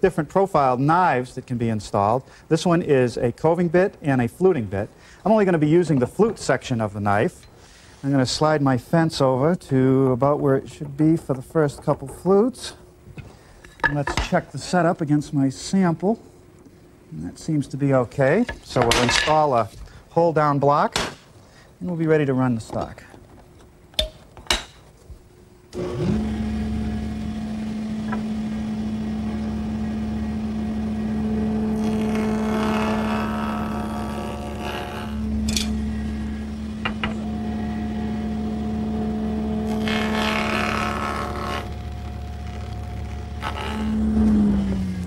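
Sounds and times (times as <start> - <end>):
table saw motor humming: 25.7 - 45.0
wood cutting noise: 25.7 - 45.0.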